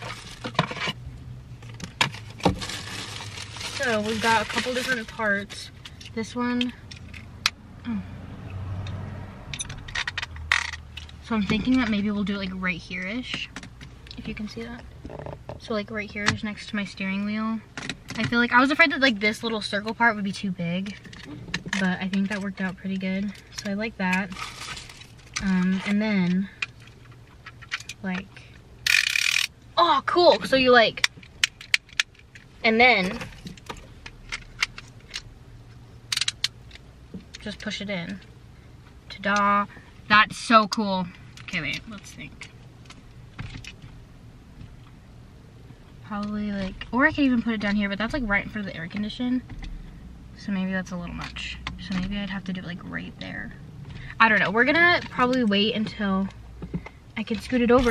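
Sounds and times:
plastic parts clicking and scraping: 9.6 - 12.0, 20.9 - 29.5, 36.1 - 37.8.

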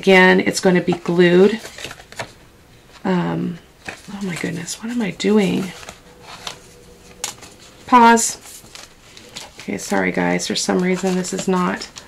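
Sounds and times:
paper rustling: 3.8 - 12.0.

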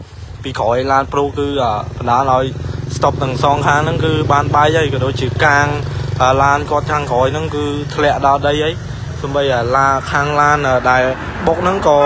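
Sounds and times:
low engine hum: 0.0 - 12.0
person talking: 0.5 - 12.0.

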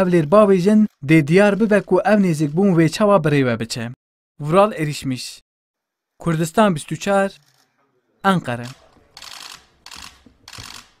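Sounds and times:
camera shutters clicking: 8.6 - 11.0.

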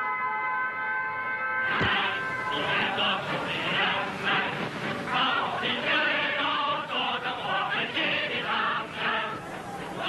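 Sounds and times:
music: 0.0 - 10.0
choir singing held notes: 1.7 - 10.0.

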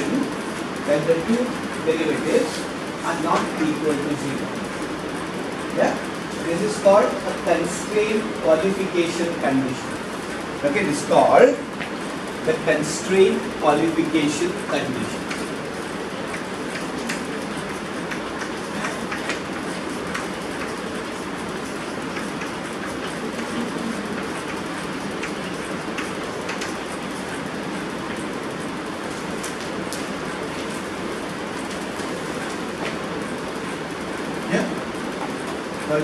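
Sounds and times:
rushing room noise: 0.0 - 36.0.

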